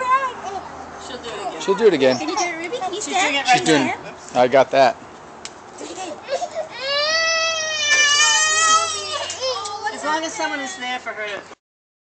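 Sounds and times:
toddler crying: 6.0s - 9.7s.

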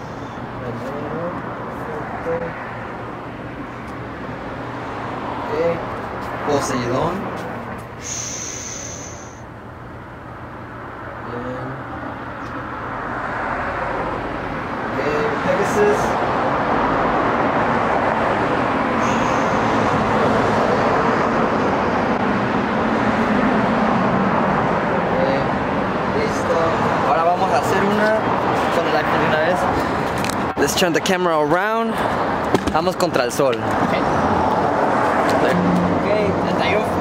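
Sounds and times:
road traffic noise: 0.0s - 37.0s.

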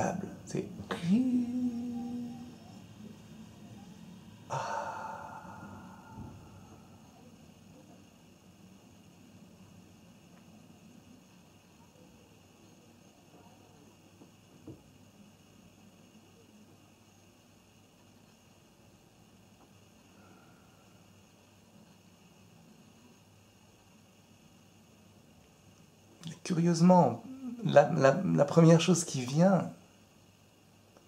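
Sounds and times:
man sighing: 4.5s - 6.8s.

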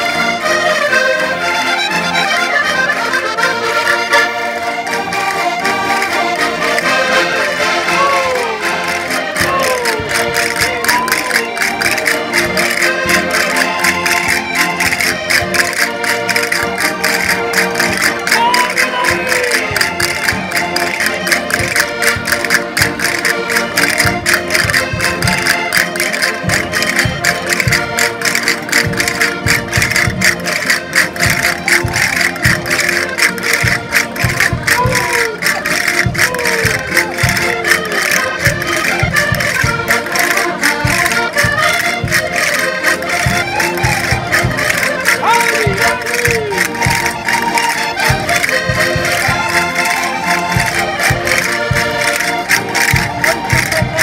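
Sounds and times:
concertina dance tune: 0.0s - 54.0s
crowd calling out: 2.0s - 54.0s.

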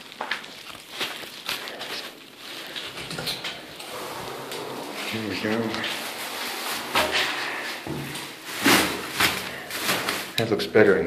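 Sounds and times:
plastic bag rustling and crinkling: 0.0s - 11.0s.

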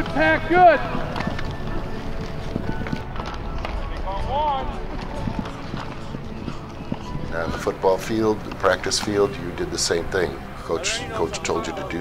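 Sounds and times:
helmets and pads knocking: 0.0s - 9.4s
cleats running on turf: 0.0s - 10.1s.

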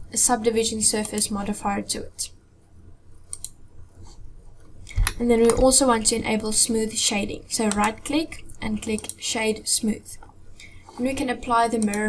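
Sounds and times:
faint low hum: 0.0s - 12.0s
computer mouse clicks: 3.3s - 4.2s, 7.6s - 8.1s, 8.8s - 9.2s, 11.7s - 12.0s.

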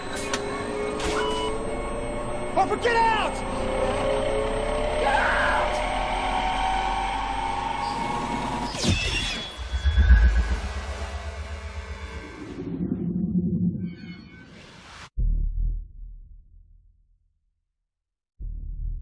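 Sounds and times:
machine hum with rising tone: 0.0s - 15.8s
deep rumble: 9.6s - 14.0s.

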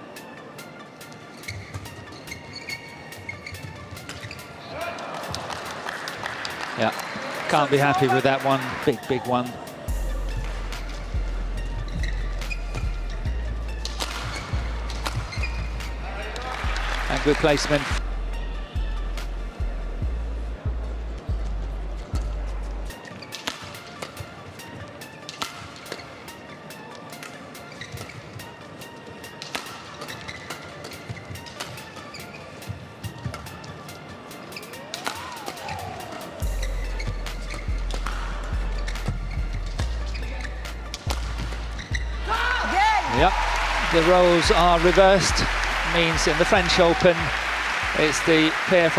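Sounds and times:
people shouting and cheering: 4.6s - 5.5s, 34.9s - 36.6s, 42.2s - 48.9s
rackets striking shuttlecock: 13.7s - 16.9s, 23.1s - 26.4s, 29.3s - 32.3s, 34.6s - 42.2s.

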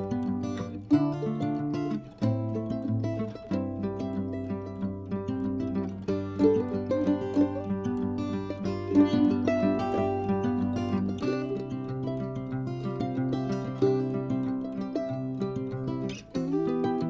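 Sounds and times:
plucked strings music: 0.0s - 17.0s.

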